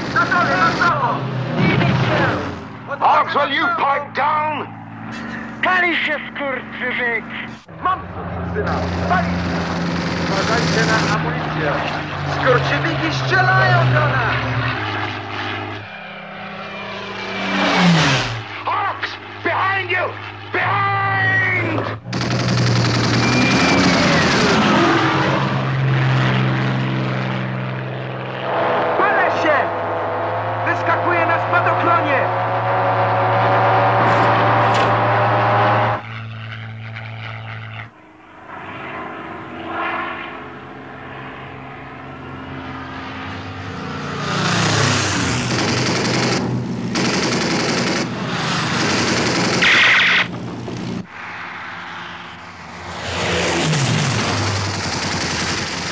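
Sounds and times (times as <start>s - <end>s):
aircraft piston engines droning: 0.0s - 55.9s
machine-gun fire: 22.1s - 24.6s, 45.4s - 50.4s, 54.1s - 55.9s.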